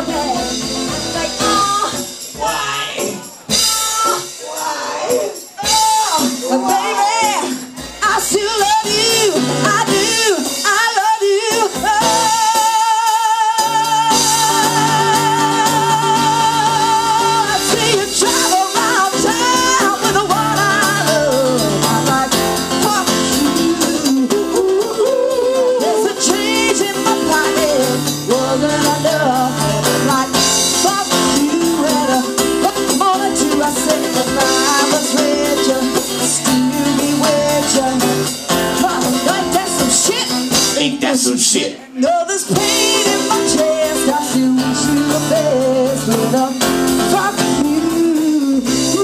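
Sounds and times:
acoustic-electric guitar: 0:00.0 - 0:49.0
drum kit: 0:00.0 - 0:49.0
woman singing: 0:00.0 - 0:49.0.

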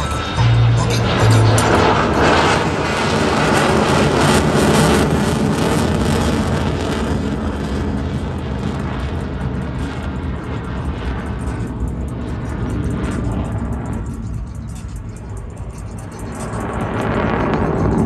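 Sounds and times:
music: 0:00.0 - 0:02.3, 0:09.7 - 0:18.0
jet flying past: 0:00.0 - 0:18.0.

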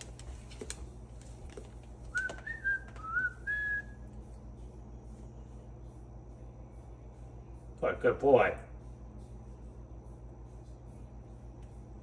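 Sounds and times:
person whistling notes: 0:02.1 - 0:04.0.

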